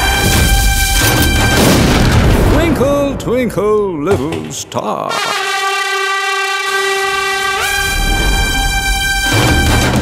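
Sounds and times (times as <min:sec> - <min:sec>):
train horn blast: 0:00.0 - 0:01.6, 0:05.1 - 0:10.0.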